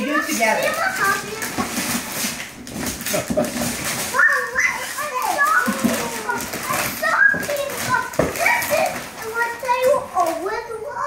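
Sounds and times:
wrapping paper rustling and tearing: 0:00.0 - 0:11.0
children squealing excitedly: 0:04.0 - 0:09.0.

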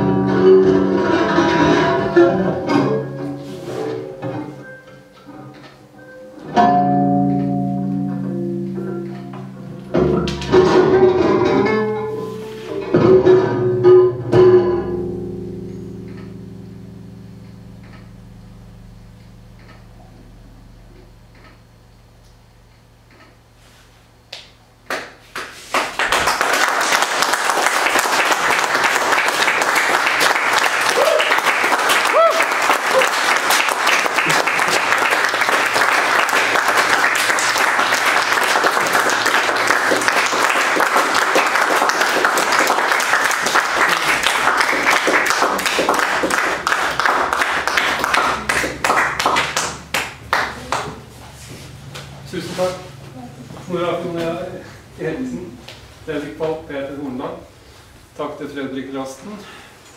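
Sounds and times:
low steady electronic hum: 0:04.0 - 0:25.4, 0:32.6 - 0:59.2
audience applauding: 0:24.9 - 0:51.2.

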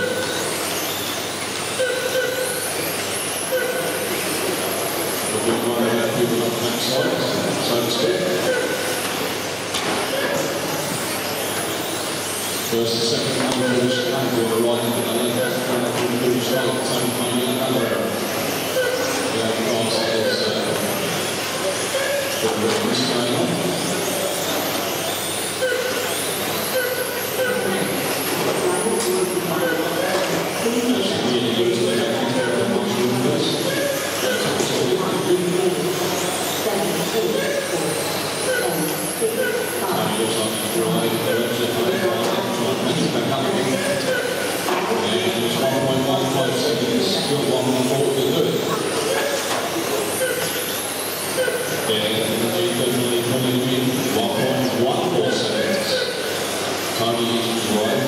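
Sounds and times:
electric toy cars whining: 0:00.0 - 0:58.0
voice over public address: 0:05.2 - 0:09.1, 0:12.7 - 0:24.1, 0:25.6 - 0:50.6, 0:51.4 - 0:56.4.

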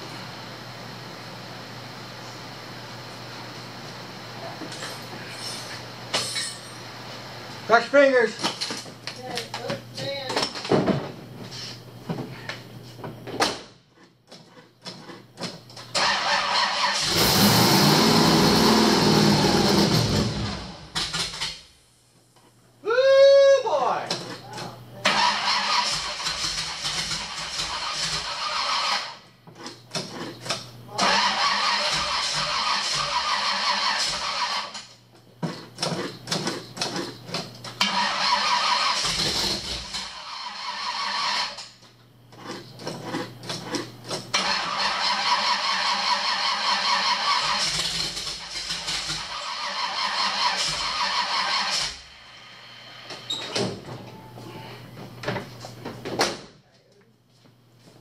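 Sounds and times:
starter motor cranking engine: 0:15.9 - 0:21.4, 0:25.0 - 0:34.8, 0:37.8 - 0:41.8, 0:42.4 - 0:52.1.

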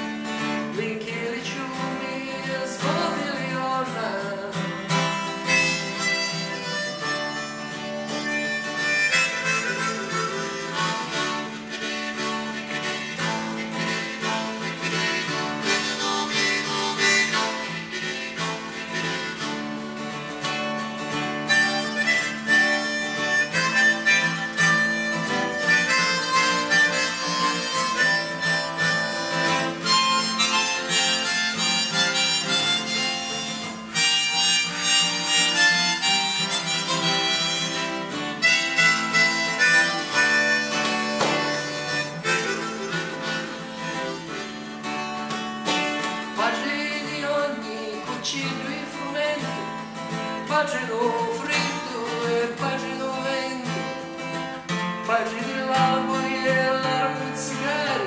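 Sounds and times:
harmonica melody: 0:00.0 - 0:58.0
strummed acoustic guitar: 0:00.0 - 0:58.0.

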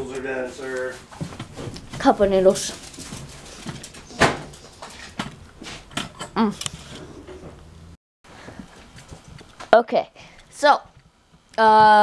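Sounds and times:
knocks and clatters of handling: 0:01.1 - 0:07.7.

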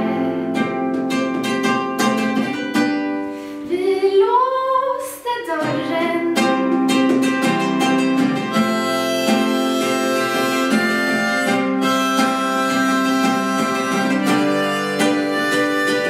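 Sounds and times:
fingerpicked acoustic guitar: 0:00.0 - 0:16.0
harmonica melody: 0:07.0 - 0:16.0.

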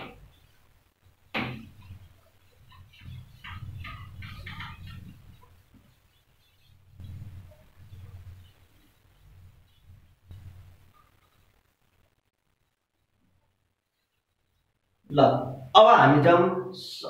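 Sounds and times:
sharp knock: 0:01.3 - 0:01.8
duster rubbing whiteboard: 0:01.3 - 0:11.6.

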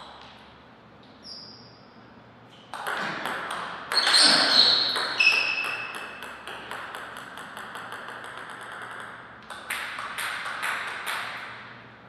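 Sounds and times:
table tennis ball bouncing: 0:02.5 - 0:11.7.

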